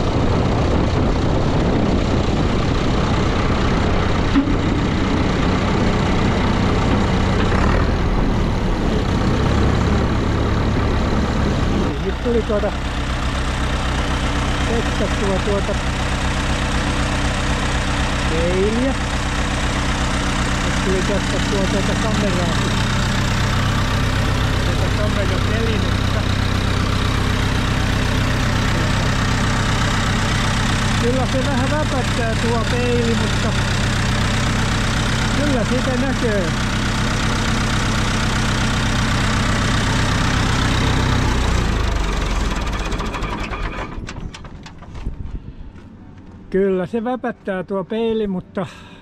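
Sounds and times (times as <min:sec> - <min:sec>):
tractor diesel engine idling: 0:00.0 - 0:47.2.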